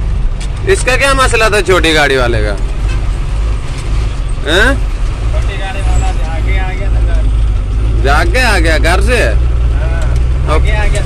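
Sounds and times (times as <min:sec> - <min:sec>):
truck diesel engine rumbling: 0:00.0 - 0:11.0.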